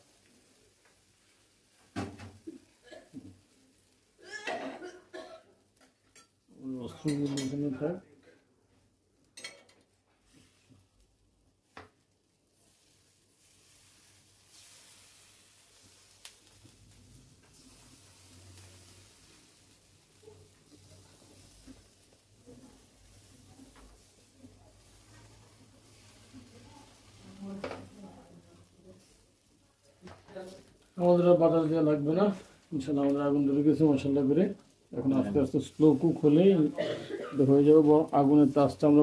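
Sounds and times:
food sizzling in a pan: 0.0 - 39.0.

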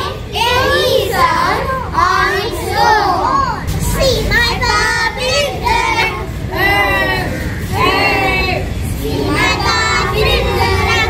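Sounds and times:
children singing and chanting: 0.0 - 11.0.

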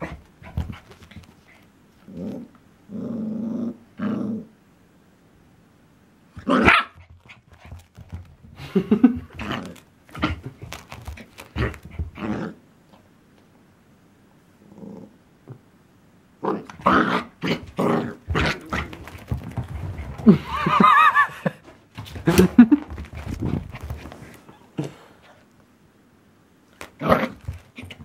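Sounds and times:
dogs growling and yapping: 0.0 - 4.5, 9.1 - 13.0, 14.6 - 15.6, 16.4 - 21.4, 26.8 - 28.0.

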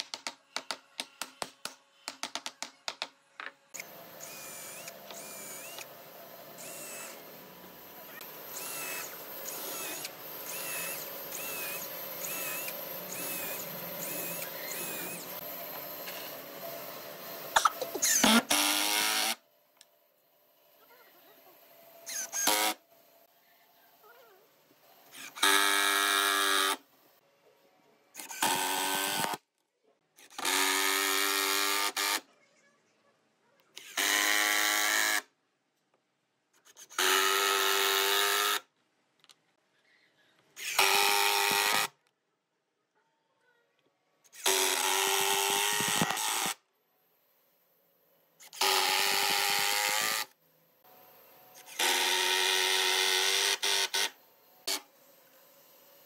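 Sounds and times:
cordless drill driving screws: 3.8 - 5.9, 6.6 - 7.2, 8.1 - 15.4, 18.0 - 19.4, 22.0 - 22.8, 25.1 - 26.8, 28.2 - 29.4, 40.6 - 41.9, 44.3 - 46.6, 48.4 - 50.3, 51.6 - 54.8.

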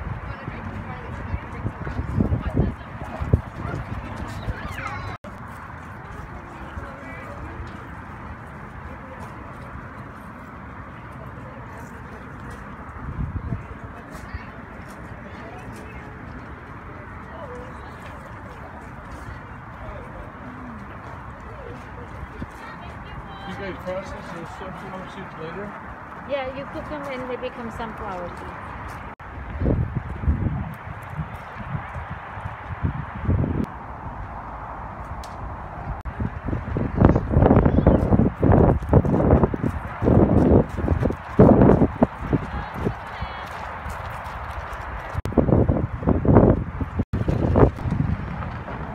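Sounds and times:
outdoor background noise: 0.0 - 48.9
footsteps on gravel: 38.6 - 45.3.

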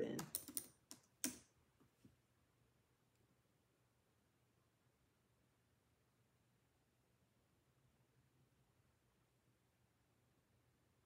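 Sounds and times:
keyboard key clicks: 0.1 - 1.4.

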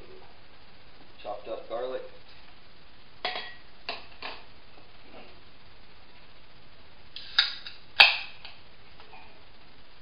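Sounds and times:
drink can cracked open: 7.2 - 8.4.

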